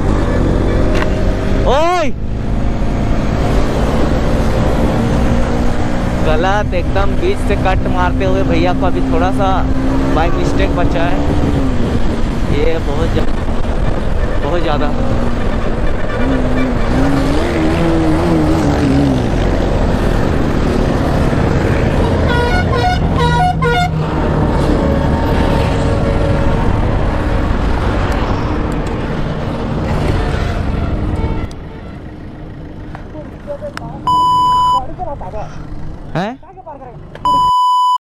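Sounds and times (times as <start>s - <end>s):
motorcycle engine: 0.0s - 37.2s
vehicle horn honking: 22.0s - 24.0s.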